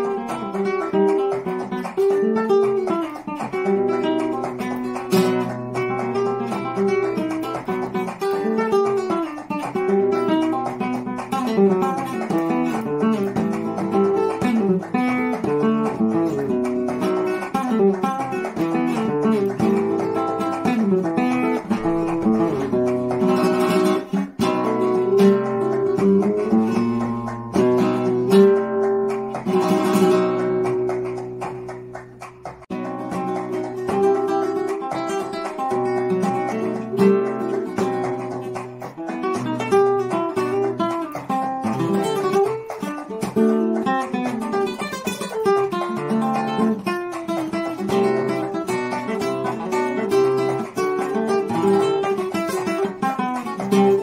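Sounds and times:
solo flamenco guitar: 0.0 - 54.0.

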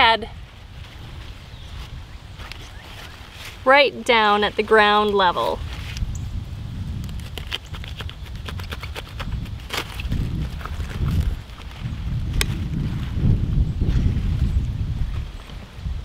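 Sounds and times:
wind rumble on microphone: 0.0 - 16.0
lettuce leaves snapping and crackling: 6.9 - 13.0
knife cutting lettuce: 7.0 - 11.4.

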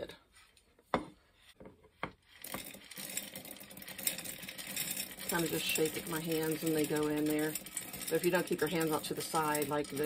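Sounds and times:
beans rattling into glass jar: 2.3 - 10.0.

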